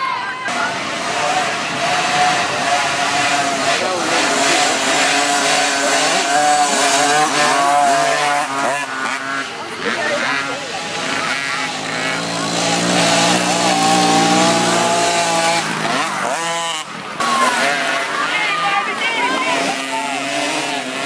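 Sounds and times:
dirt bike engines revving: 0.0 - 21.0.

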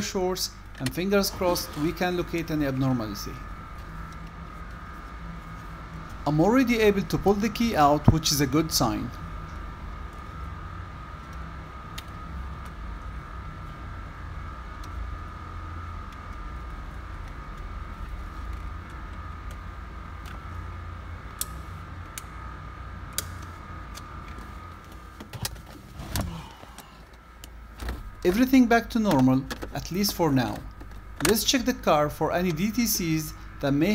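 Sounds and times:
low hum with thin whine: 0.0 - 33.9.

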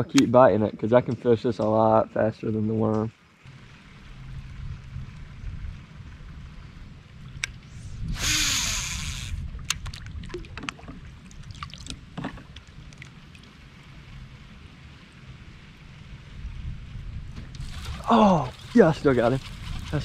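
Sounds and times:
steady low rumble: 3.5 - 20.0
fishing line whirring off reel: 7.4 - 9.8, 17.5 - 20.0
fishing reel clicks and knocks: 7.4 - 9.9.

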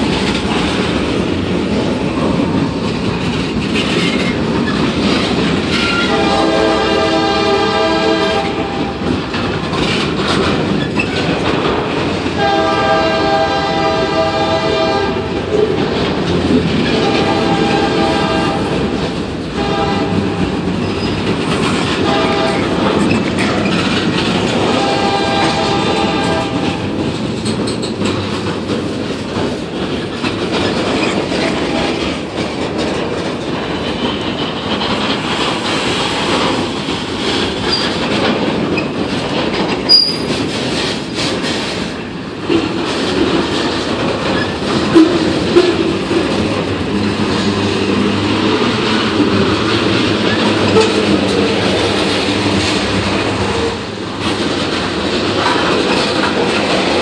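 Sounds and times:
freight train wheels rumbling: 0.0 - 57.0
locomotive air horn blasts: 5.9 - 9.0, 12.4 - 15.3, 16.9 - 18.8, 19.6 - 20.6, 22.0 - 22.8, 24.6 - 26.8, 50.7 - 51.1.

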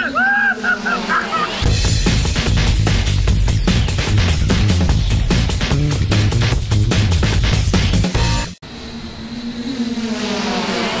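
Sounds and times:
drone propellers buzzing: 0.0 - 11.0.

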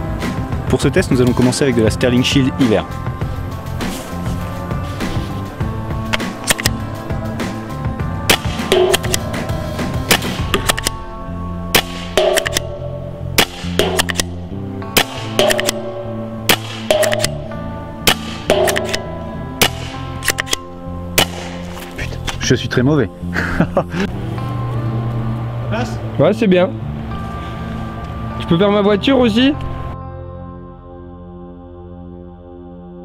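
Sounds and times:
background music: 0.0 - 33.0
paintball marker firing: 6.1 - 6.8, 8.3 - 9.5, 10.1 - 11.0, 11.7 - 22.0
paintballs hitting plastic target: 8.3 - 9.2, 10.1 - 11.0, 11.8 - 12.7, 13.4 - 14.3, 15.0 - 15.9, 16.5 - 17.4, 18.1 - 20.6.

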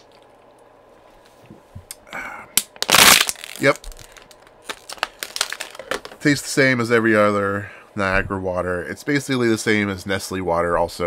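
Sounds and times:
plastic bottle crinkling: 2.8 - 6.2.

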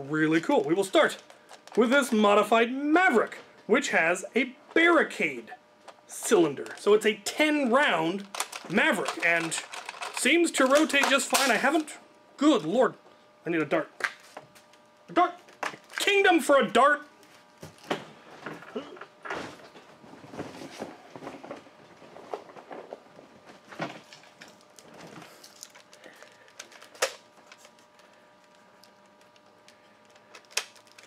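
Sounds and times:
rummaging plastic gear: 0.4 - 2.5, 8.2 - 12.8.

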